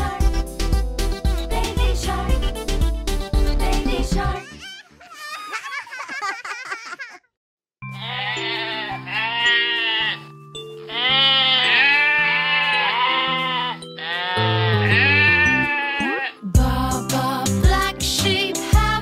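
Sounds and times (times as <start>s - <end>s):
children's song chords and bass: 0.0s - 4.5s, 13.8s - 19.0s
cartoon sheep bleating: 7.9s - 10.2s, 10.9s - 16.5s.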